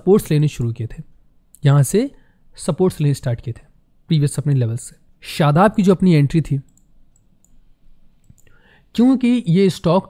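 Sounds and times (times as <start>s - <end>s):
computer mouse clicks: 6.7s - 7.6s, 8.2s - 8.6s
soft intake of breath: 8.4s - 8.9s.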